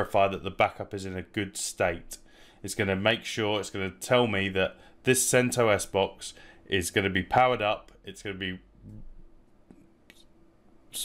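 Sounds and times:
low steady hum: 0.0 - 11.0
quick breath in: 2.3 - 2.6.

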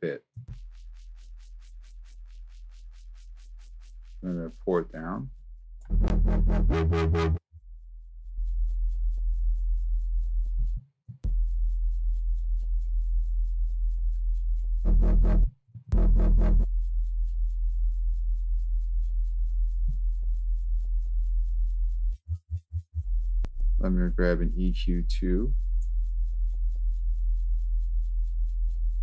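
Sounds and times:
distorted synth bass loop: 5.9 - 7.4, 14.9 - 16.7, 23.8 - 25.6
loud full bass: 5.9 - 7.4, 14.9 - 16.7
low hum: 14.9 - 21.9, 23.2 - 29.0.

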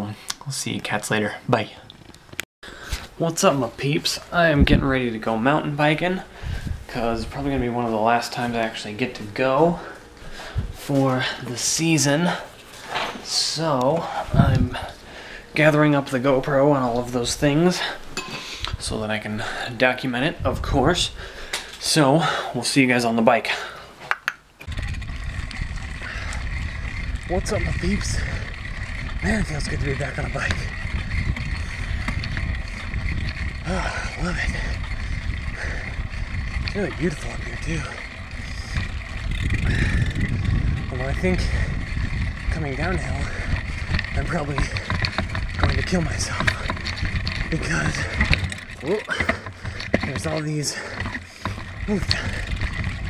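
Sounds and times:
mountain bike rumbling on dirt trail: 2.0 - 13.3, 14.0 - 18.1, 18.7 - 21.5, 24.6 - 53.0
air rushing over microphone: 2.8 - 11.4, 24.8 - 46.7
faint rattles: 24.6 - 53.0.

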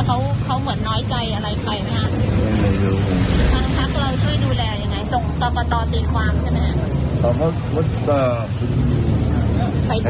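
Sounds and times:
low rumble: 2.4 - 4.9.

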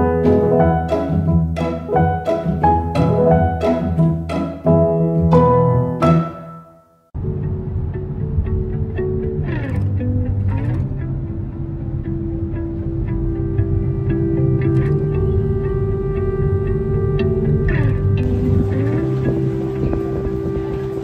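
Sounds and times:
guitar and bass instrumental music: 0.0 - 6.6, 7.2 - 21.0.

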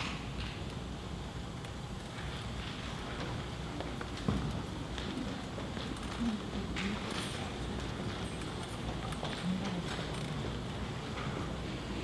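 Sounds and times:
murmur of audience: 2.1 - 12.0.

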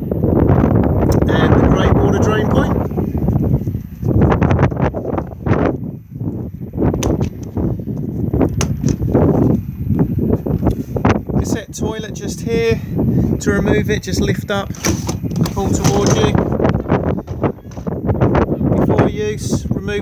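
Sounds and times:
low rumbling noise: 0.0 - 20.0
person talking indistinctly: 11.4 - 16.5.

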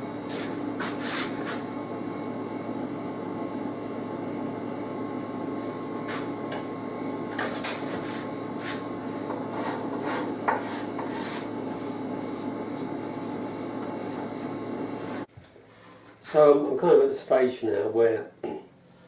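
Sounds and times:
workshop hum: 0.0 - 19.0
tool scraping wood: 7.4 - 13.8.

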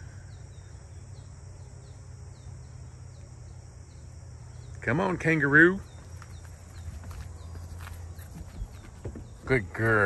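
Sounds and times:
dog paws thudding on wooden deck: 5.8 - 10.0.

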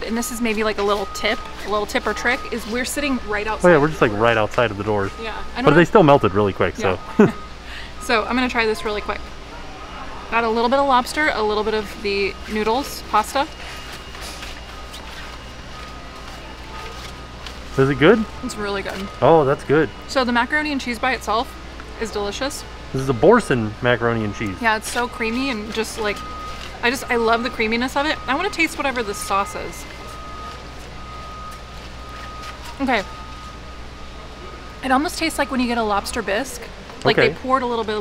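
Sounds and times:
faint music: 0.0 - 38.0
low hum: 0.0 - 38.0
faint thin steady tone: 0.2 - 14.9, 17.7 - 21.4, 22.0 - 36.4.

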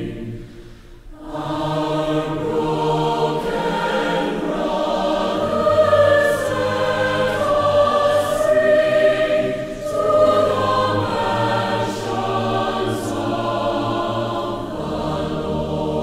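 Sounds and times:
choir singing long notes: 0.0 - 16.0.

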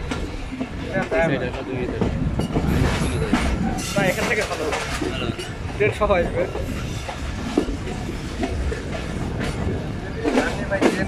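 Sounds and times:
people's voices: 0.0 - 11.0
train wheels rumbling on rails: 0.0 - 11.0.

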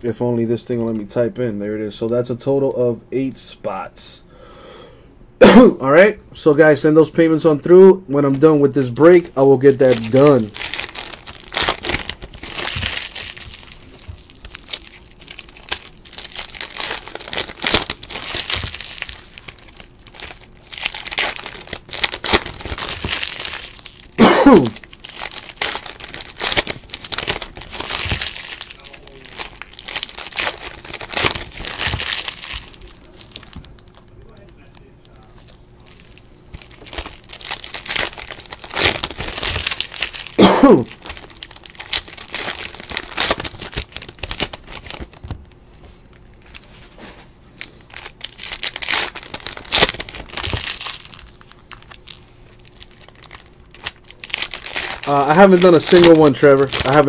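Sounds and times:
foil wrappers crinkling and tearing: 8.2 - 57.0.

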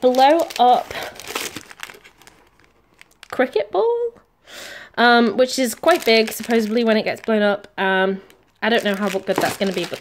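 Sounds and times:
plastic packaging crinkling: 0.0 - 3.6, 5.5 - 10.0.

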